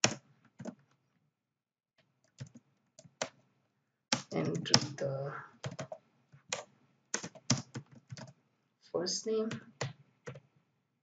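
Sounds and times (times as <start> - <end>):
typing on computer keyboard: 0.0 - 0.9, 2.2 - 3.4, 5.6 - 8.4, 9.5 - 10.5.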